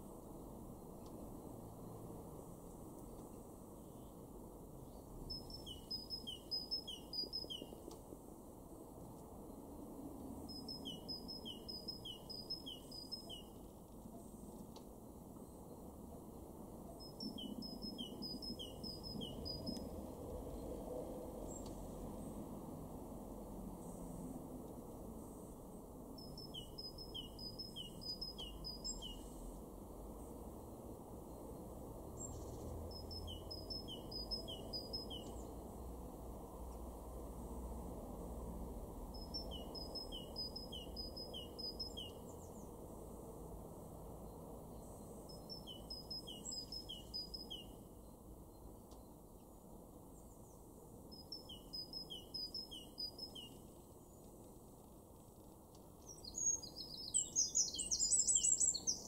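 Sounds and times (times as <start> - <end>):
great tit singing: 5.3 - 7.8, 10.5 - 13.6, 17.0 - 19.8, 26.2 - 29.2, 32.2 - 35.5, 39.2 - 42.6, 45.3 - 47.7, 51.1 - 53.6, 56.0 - 59.0.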